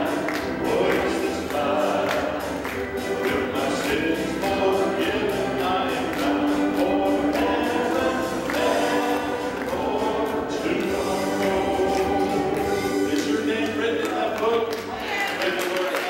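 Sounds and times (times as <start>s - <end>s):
instrumental accompaniment: 0.0s - 15.0s
song leader singing on microphone: 0.0s - 15.6s
congregation singing a hymn: 0.0s - 16.0s.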